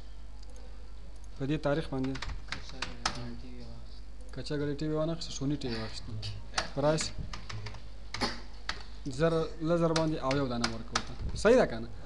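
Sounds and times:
keyboard keystroke clicks: 0:09.9 - 0:11.2.

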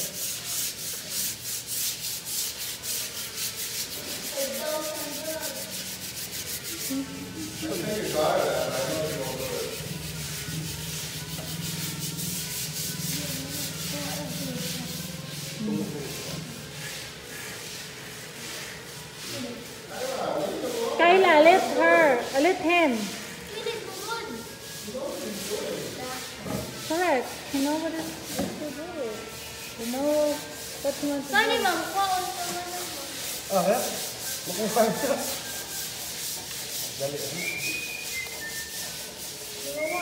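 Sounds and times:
cloth rubbing window glass: 0:00.0 - 0:28.7, 0:29.6 - 0:40.0.

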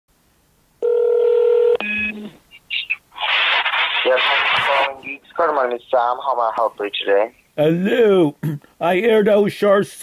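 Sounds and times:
telephone line tones: 0:00.8 - 0:02.3.

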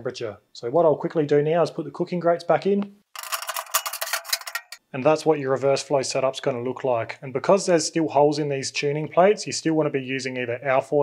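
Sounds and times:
metal grates clattering and clinking: 0:03.2 - 0:04.8.

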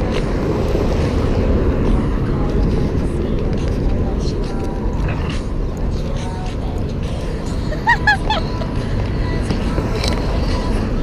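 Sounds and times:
low rumble of passing cars: 0:00.0 - 0:11.0.

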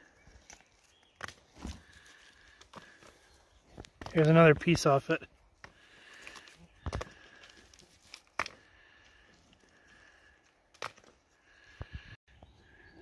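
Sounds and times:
faint clicks and knocks of rocks: 0:00.0 - 0:12.1.

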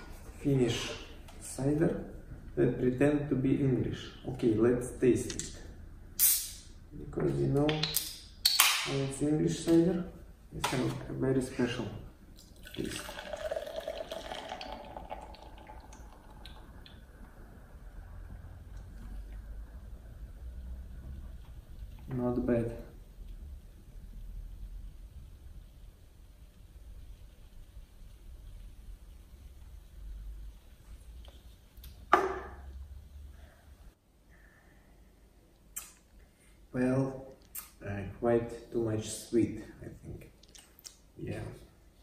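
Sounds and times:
cider pouring into a glass: 0:12.4 - 0:17.0.

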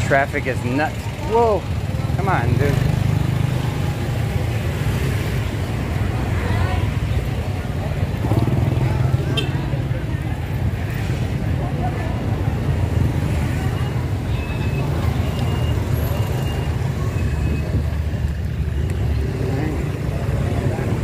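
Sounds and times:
motorbike and scooter traffic rumble: 0:00.0 - 0:21.0
faint high beeps: 0:13.6 - 0:17.7.

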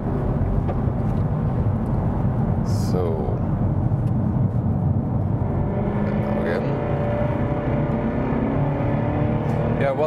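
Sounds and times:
car engine under throttle: 0:00.0 - 0:10.0
low road rumble: 0:00.0 - 0:10.0.

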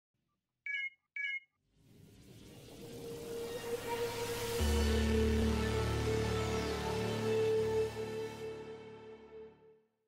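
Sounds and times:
short electronic beeps: 0:00.7 - 0:01.5
music swell: 0:01.8 - 0:09.7.

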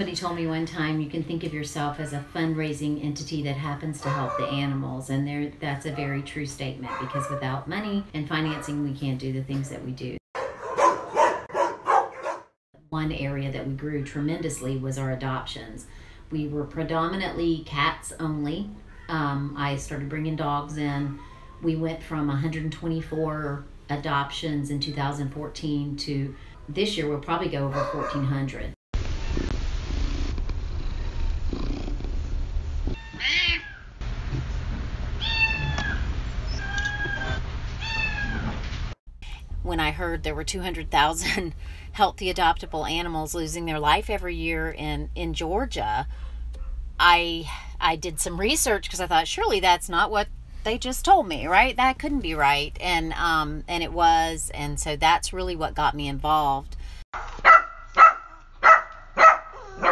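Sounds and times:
dog barking: 0:04.0 - 0:04.6, 0:06.8 - 0:07.6, 0:10.4 - 0:12.6, 0:27.7 - 0:28.2, 0:57.2 - 0:59.9
cat meowing: 0:33.0 - 0:33.9, 0:35.2 - 0:38.5.

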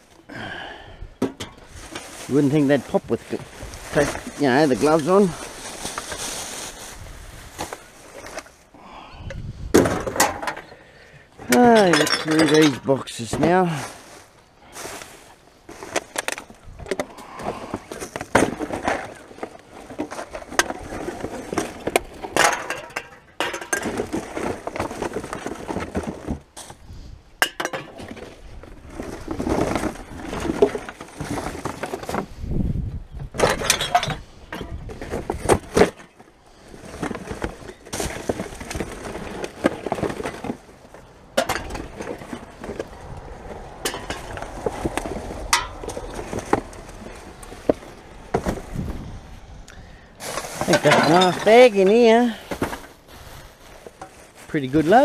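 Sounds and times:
plastic bags and cardboard rustling: 0:00.0 - 0:08.8, 0:11.3 - 0:27.2, 0:27.8 - 0:55.0
cans and bottles clinking: 0:11.4 - 0:13.6, 0:15.8 - 0:26.3, 0:27.4 - 0:28.3, 0:33.4 - 0:36.2, 0:36.8 - 0:42.9, 0:43.8 - 0:44.8, 0:45.4 - 0:47.2, 0:49.7 - 0:52.9.

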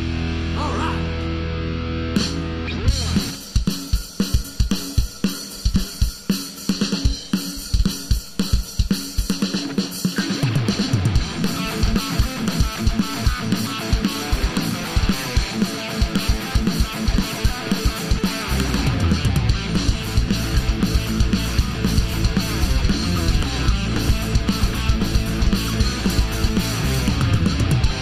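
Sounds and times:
distorted electric guitar chord: 0:00.0 - 0:03.4, 0:10.3 - 0:28.0
bass guitar: 0:00.0 - 0:03.6, 0:10.2 - 0:28.0
drum kit pounding beat: 0:02.1 - 0:28.0.

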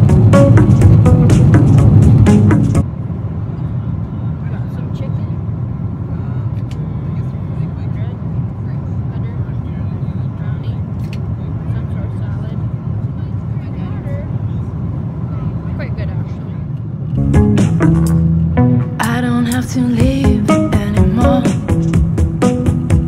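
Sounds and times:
airliner cabin rumble: 0:00.0 - 0:23.0.

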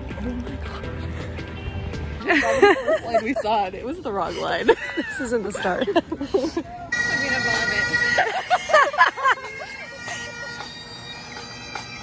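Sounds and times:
woman laughing: 0:02.2 - 0:06.9, 0:08.0 - 0:10.8
bagpipes playing: 0:06.9 - 0:12.0.

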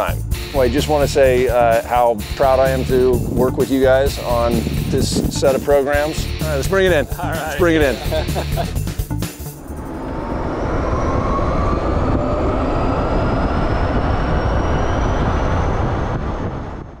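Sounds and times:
road rush: 0:00.0 - 0:17.0
wind: 0:00.0 - 0:17.0
electric motor whine: 0:09.6 - 0:17.0.

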